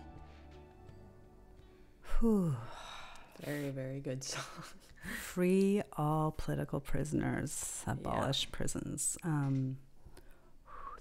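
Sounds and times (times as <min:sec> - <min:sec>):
person sighing loudly: 0:02.0 - 0:03.6.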